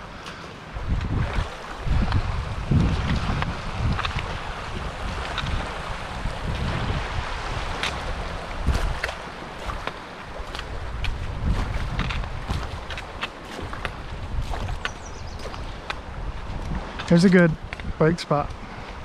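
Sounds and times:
creek running over stones: 0.0s - 19.0s
wind buffeting microphone: 0.7s - 19.0s
footsteps on gravel: 8.6s - 16.0s.

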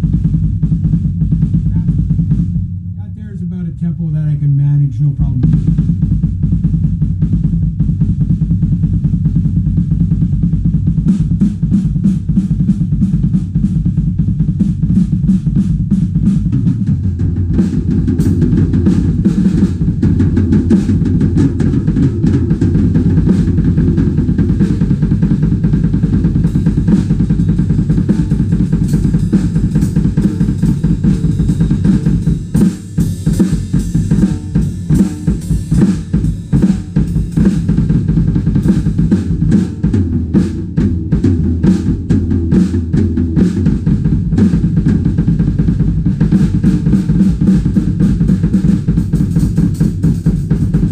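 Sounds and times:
double bass drum pedal strokes: 0.0s - 50.9s
cymbals: 17.6s - 39.7s.

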